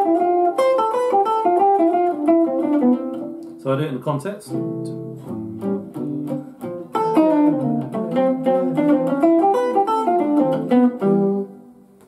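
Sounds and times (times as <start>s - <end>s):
jazz guitar single-note line: 0.0s - 11.7s.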